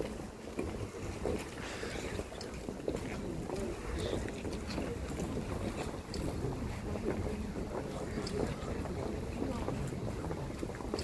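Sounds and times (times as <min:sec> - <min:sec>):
crowd footsteps shuffling: 0:00.0 - 0:11.0
low murmur of crowd: 0:00.0 - 0:11.0
wind rumbling on microphone: 0:00.0 - 0:11.0.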